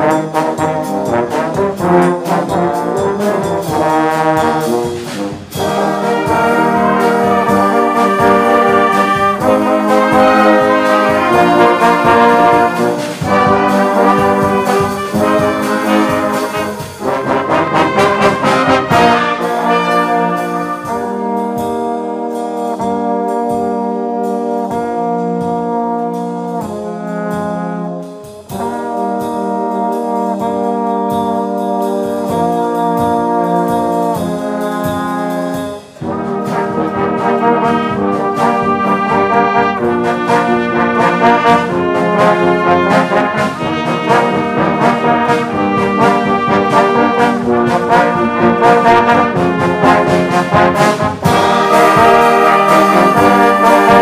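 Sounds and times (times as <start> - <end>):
brass band playing: 0.0 - 54.0
drum strokes: 0.0 - 54.0.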